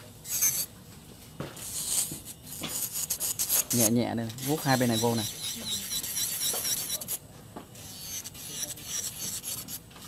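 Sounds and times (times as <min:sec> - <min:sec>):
drill bit rasping on nail: 0:00.2 - 0:00.7, 0:01.6 - 0:07.2, 0:07.8 - 0:09.8.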